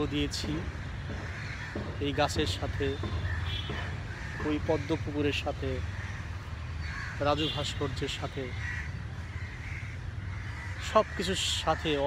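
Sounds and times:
crows cawing: 0.0s - 12.0s.

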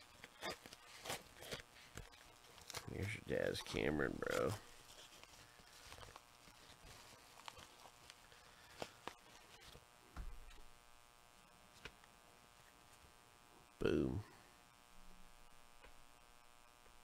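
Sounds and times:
faint room hum: 0.0s - 17.0s.

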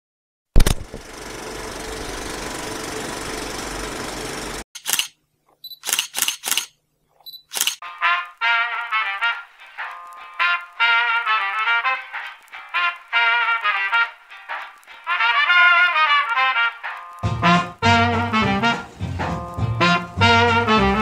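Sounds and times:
camera shutter clicks: 4.8s - 7.8s
trumpet-led music: 7.8s - 21.0s
steady hiss: 8.2s - 16.2s.

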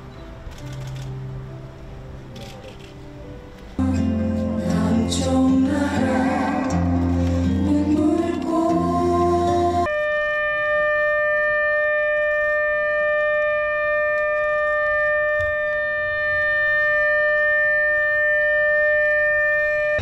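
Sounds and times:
choral singing: 3.8s - 9.9s
steady siren tone: 5.8s - 8.8s, 9.8s - 20.0s.

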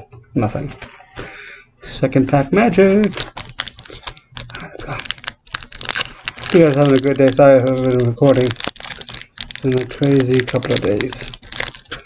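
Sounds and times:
foil wrapper crinkling: 2.3s - 12.0s.

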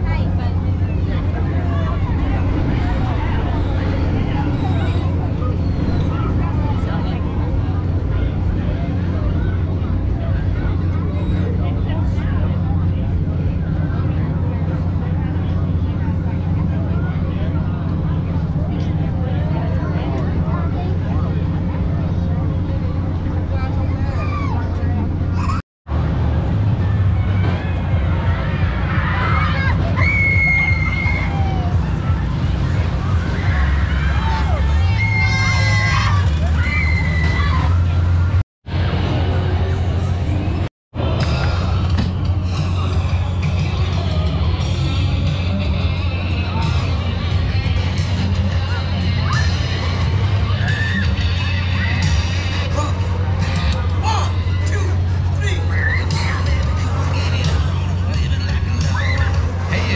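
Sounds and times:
babble of voices: 0.0s - 25.6s, 26.4s - 59.9s
ride machinery humming: 0.0s - 59.9s.

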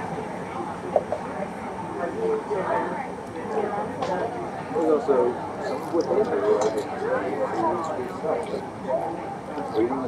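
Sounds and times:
murmur of diners talking: 0.0s - 10.0s.

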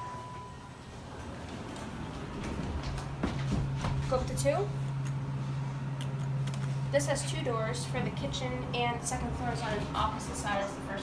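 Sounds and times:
elevator electronic beep: 0.0s - 1.2s
elevator low hum: 0.0s - 11.0s.

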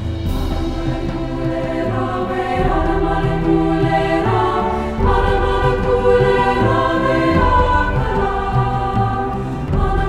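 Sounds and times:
low instrumental accompaniment: 0.0s - 10.0s
treble choir singing: 0.0s - 10.0s.

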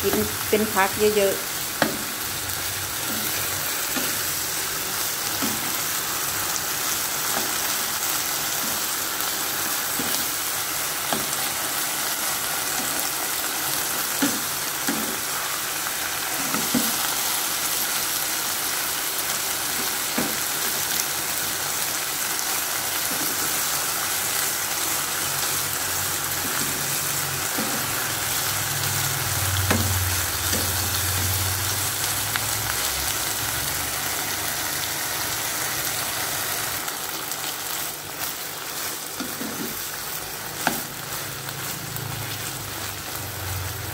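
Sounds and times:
food sizzling in a wok: 0.0s - 43.9s
wooden spatula scraping a pan: 39.2s - 39.8s.

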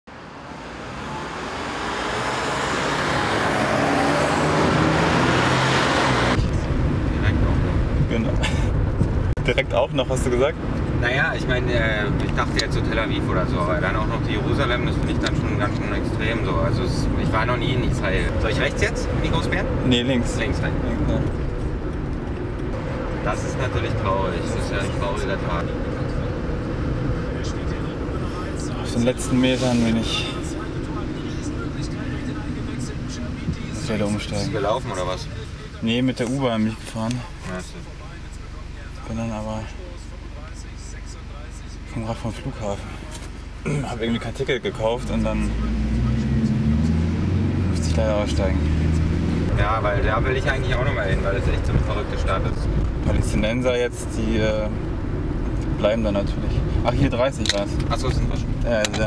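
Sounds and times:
road traffic noise: 0.1s - 59.0s
muffled car cabin rumble: 6.4s - 9.7s, 12.1s - 34.4s, 49.0s - 59.0s.

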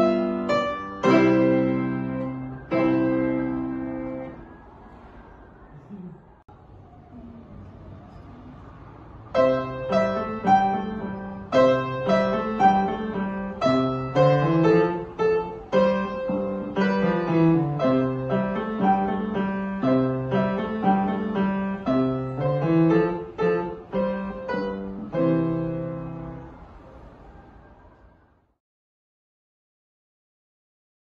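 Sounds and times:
grand piano duet: 0.0s - 5.7s, 8.1s - 28.0s.

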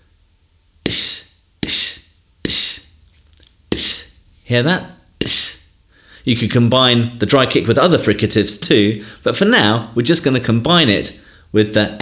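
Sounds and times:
beatboxed click and hiss: 0.8s - 4.2s, 5.2s - 5.7s.

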